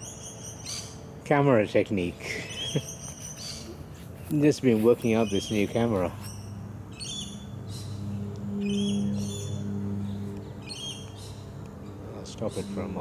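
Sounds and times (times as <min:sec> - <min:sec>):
birds calling: 0:00.0 - 0:13.0
steady low hum: 0:00.0 - 0:13.0.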